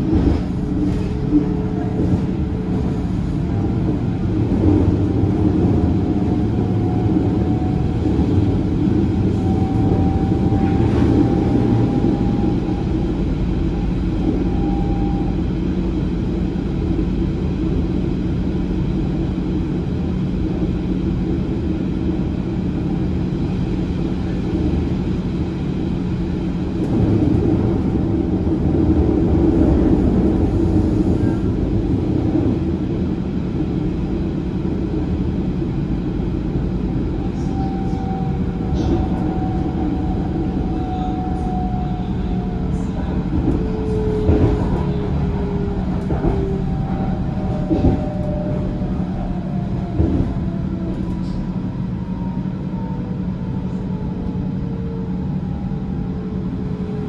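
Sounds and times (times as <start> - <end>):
train rumbling on track: 0.0 - 57.0.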